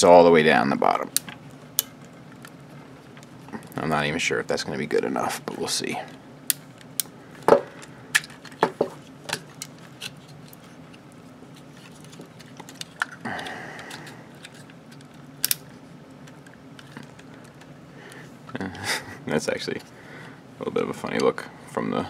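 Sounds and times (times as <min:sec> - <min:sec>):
plastic parts knocking: 0:07.4 - 0:09.5
plastic parts scraping: 0:07.4 - 0:15.2.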